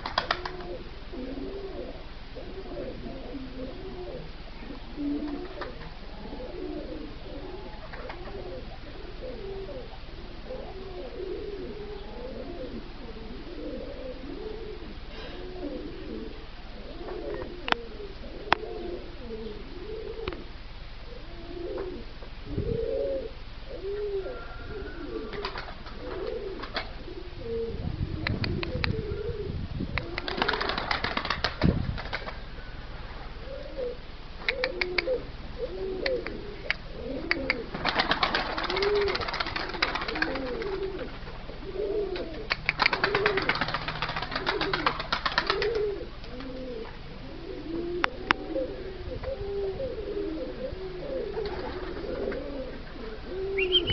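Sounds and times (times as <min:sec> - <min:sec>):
rapid wing flapping: 0:00.0 - 0:00.8, 0:25.2 - 0:27.0, 0:30.0 - 0:32.5, 0:37.2 - 0:41.4, 0:42.1 - 0:46.5
pigeons cooing: 0:00.0 - 0:53.9.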